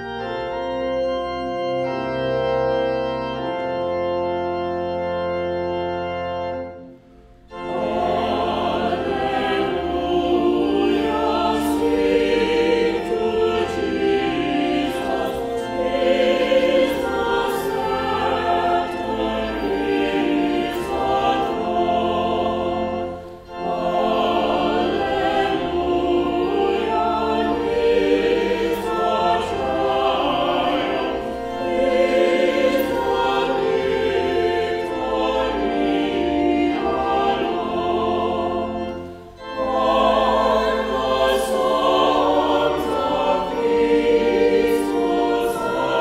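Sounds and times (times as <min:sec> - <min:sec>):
choir singing a hymn: 0:00.0 - 0:46.0
organ bass notes: 0:00.0 - 0:46.0.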